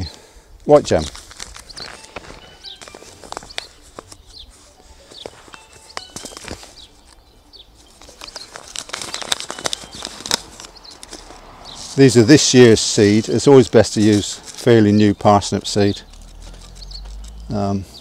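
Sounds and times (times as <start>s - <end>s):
paper packet rustling: 0.7s - 17.5s.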